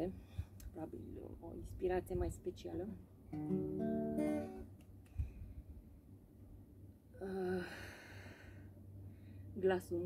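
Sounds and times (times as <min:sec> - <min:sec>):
acoustic guitar chord strummed: 0:03.3 - 0:04.8.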